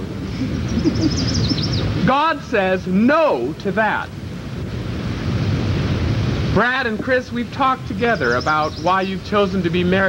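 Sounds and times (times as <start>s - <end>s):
low wind rumble on microphone: 0.0s - 10.0s
bird chirping: 0.5s - 2.0s, 7.9s - 9.7s.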